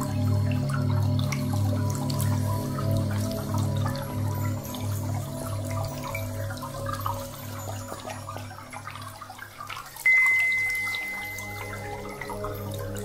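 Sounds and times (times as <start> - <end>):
trickling water: 0.0 - 13.0
high ringing note: 10.1 - 13.0
pulsing low drone: 10.8 - 13.0.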